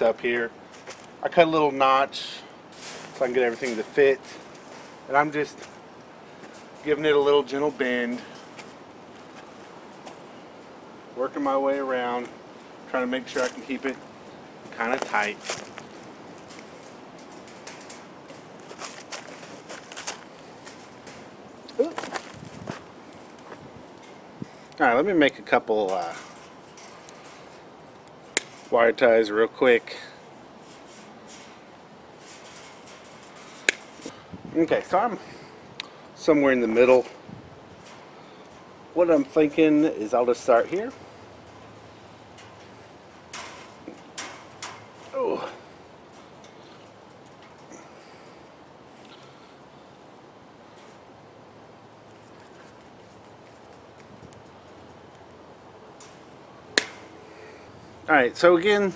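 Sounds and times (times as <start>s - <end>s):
wire mesh clinking and rattling: 12.9s - 24.8s, 25.8s - 34.2s, 36.4s - 57.6s.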